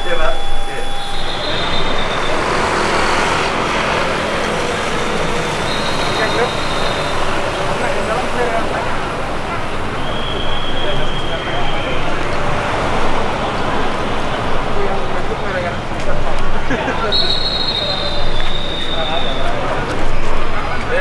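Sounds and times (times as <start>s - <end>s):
motor vehicles running: 0.0s - 21.0s
people talking: 0.0s - 21.0s.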